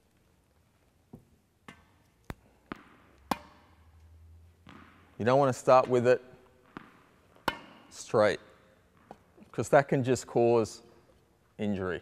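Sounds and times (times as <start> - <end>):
tennis ball bouncing: 1.1 - 8.0, 8.7 - 9.6.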